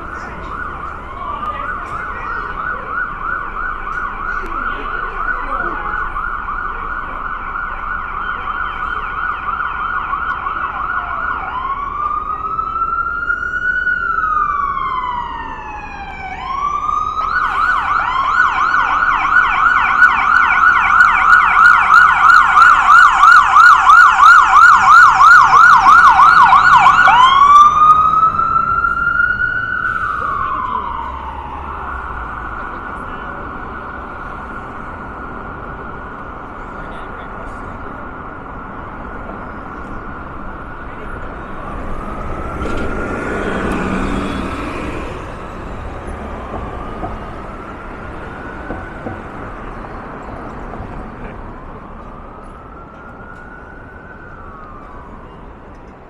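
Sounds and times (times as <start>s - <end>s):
emergency siren yelping and wailing: 0.0s - 56.0s.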